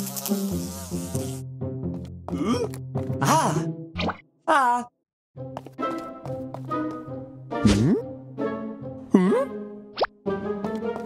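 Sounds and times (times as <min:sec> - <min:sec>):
cartoon housefly buzzing: 0:00.0 - 0:01.5
light background music: 0:05.4 - 0:11.0.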